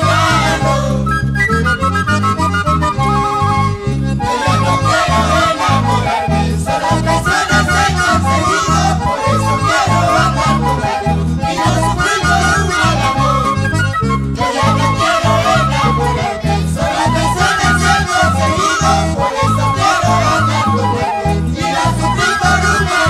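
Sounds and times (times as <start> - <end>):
lead melody: 0.0 - 23.0
strummed guitars: 0.0 - 23.0.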